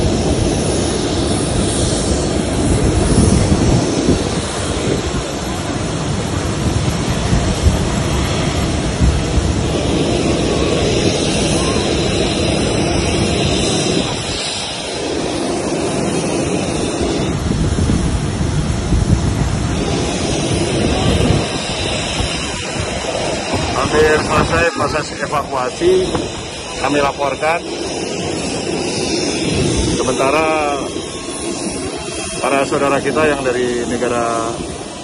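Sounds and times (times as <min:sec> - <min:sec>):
airliner engine roar: 0:00.0 - 0:35.0
wind rushing on microphone: 0:00.0 - 0:35.0.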